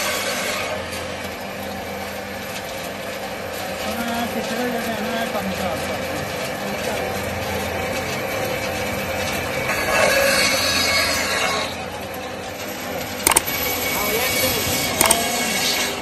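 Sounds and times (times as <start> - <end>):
bandsaw cutting meat: 9.7 - 11.7, 13.3 - 16.0
short sharp click: 13.2 - 13.5, 15.0 - 15.2.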